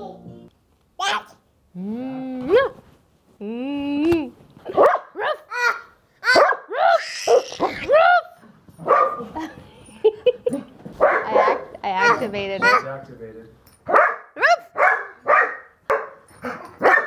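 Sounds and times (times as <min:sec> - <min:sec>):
small dog barking: 0:04.7 - 0:05.5, 0:06.2 - 0:07.7, 0:08.8 - 0:09.2, 0:11.0 - 0:12.9, 0:13.9 - 0:16.2, 0:16.8 - 0:17.0.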